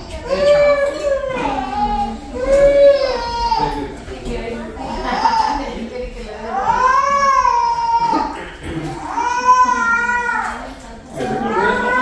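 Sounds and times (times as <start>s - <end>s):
baby crying: 6.6s - 12.0s.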